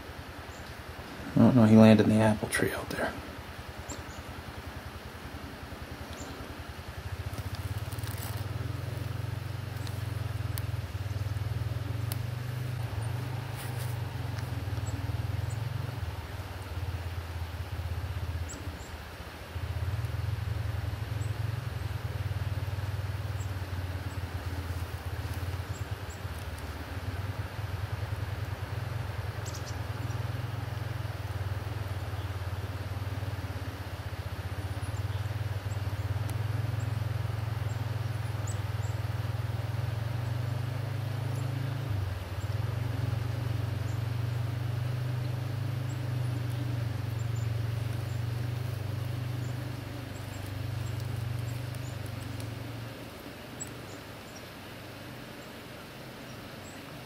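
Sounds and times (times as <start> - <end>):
faint ticks: 7.2 - 16.8, 22.9 - 27.3, 34.5 - 54.5.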